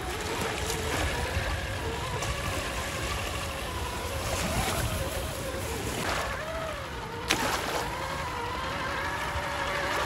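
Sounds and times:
toy car electric motor whining: 0.0 - 10.0
waves washing on shore: 0.0 - 10.0
wind rumble on microphone: 0.0 - 10.0.

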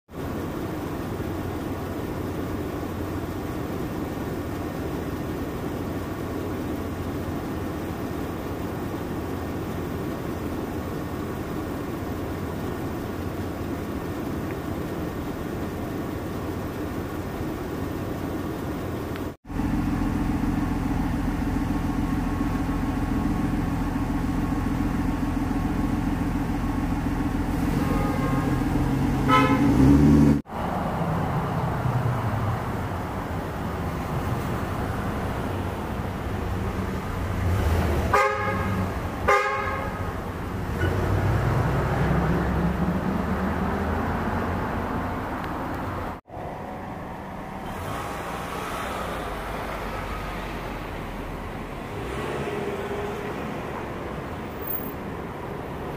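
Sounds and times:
street traffic: 0.0 - 55.9
vehicle engine running: 0.1 - 55.9
car horn tooting: 27.6 - 29.8, 38.1 - 40.2.

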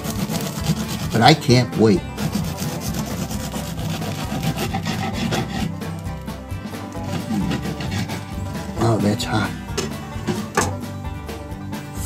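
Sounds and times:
bread knife sawing through crust: 0.0 - 10.6.

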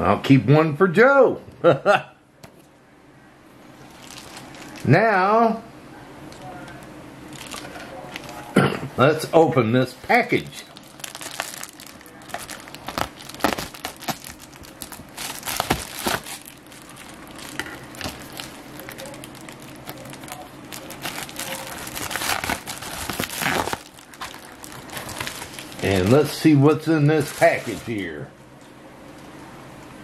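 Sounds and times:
plastic mailer crinkling: 3.8 - 5.0, 6.3 - 8.6, 10.1 - 28.2.

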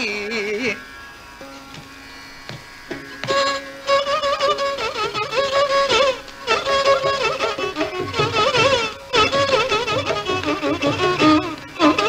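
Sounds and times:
violin holding a note: 1.5 - 12.0
light drum strokes: 5.0 - 12.0.

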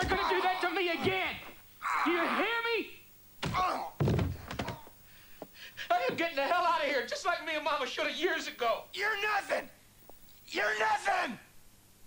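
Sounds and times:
body knocking against a wall: 3.4 - 4.9
body thudding on the floor: 3.4 - 4.9.

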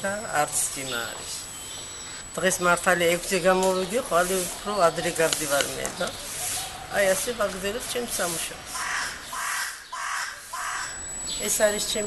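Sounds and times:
crow cawing: 8.7 - 11.0.

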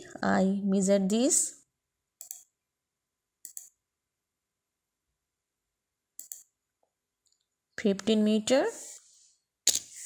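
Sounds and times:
computer mouse clicks: 2.2 - 2.6, 3.4 - 3.8, 6.2 - 6.6.

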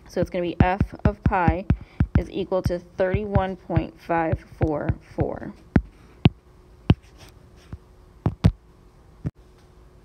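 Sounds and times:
stylus tapping on screen: 0.2 - 7.2, 8.3 - 8.6
pen writing on screen: 0.6 - 5.1, 6.9 - 7.3.

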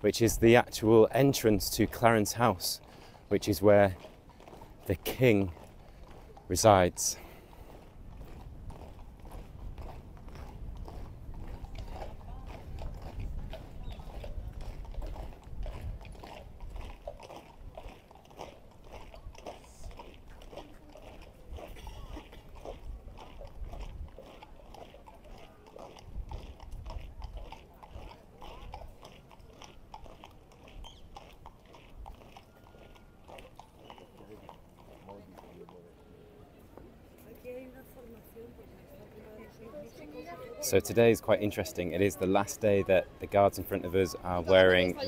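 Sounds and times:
boots marching on road: 0.1 - 38.5.

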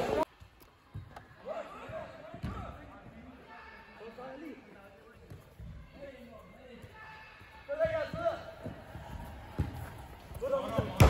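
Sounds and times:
faint players' voices: 0.0 - 11.0
soccer ball kicked thuds: 2.3 - 2.8, 7.8 - 11.0.

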